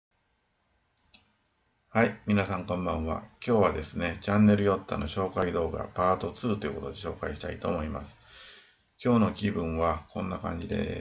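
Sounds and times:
person speaking: 2.0 - 8.2, 9.0 - 11.0.

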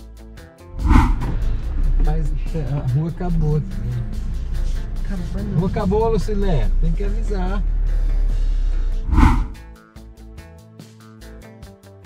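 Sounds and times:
music: 0.0 - 12.0
tyres and engine rumbling: 1.0 - 9.6.

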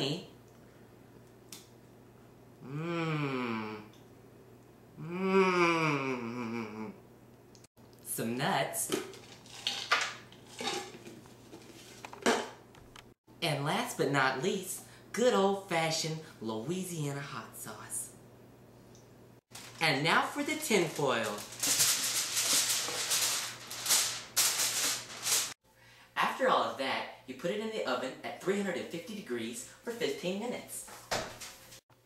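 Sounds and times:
nuts clattering into metal pan: 9.0 - 11.0
aluminium foil crinkling: 9.1 - 10.8, 19.5 - 25.6.

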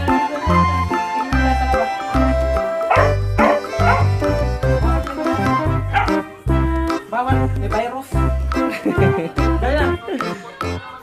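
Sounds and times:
background music: 0.0 - 11.0
dog barking: 2.9 - 4.2, 5.9 - 6.2.

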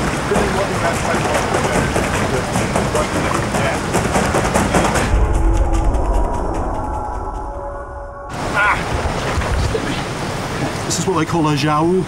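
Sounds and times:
water splashing and churning: 0.0 - 7.1, 8.3 - 12.0
deep low rumble: 4.9 - 8.4.

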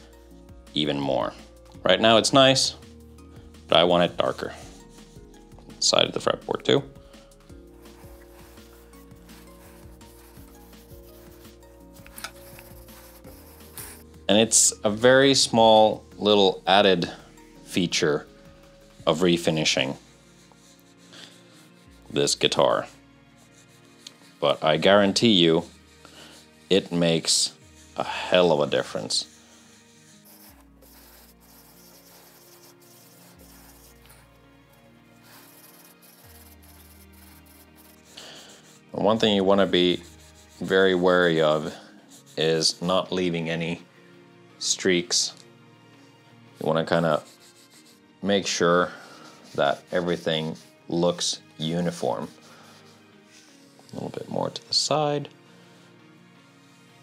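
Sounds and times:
quiet background music: 0.0 - 57.0
cloth wiping wood: 7.8 - 14.0, 23.4 - 34.4, 35.2 - 42.7, 46.8 - 48.0, 48.9 - 54.4
cloth rubbing on wood: 28.4 - 34.3, 35.2 - 38.7.

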